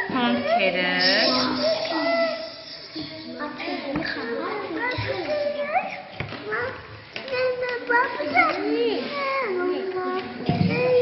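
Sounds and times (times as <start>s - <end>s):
young children chattering: 0.0s - 11.0s.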